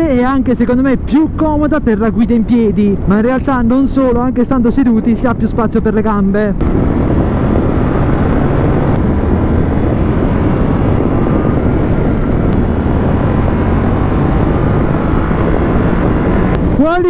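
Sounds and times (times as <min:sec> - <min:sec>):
road noise: 0:00.0 - 0:17.0
wind noise: 0:00.0 - 0:17.0.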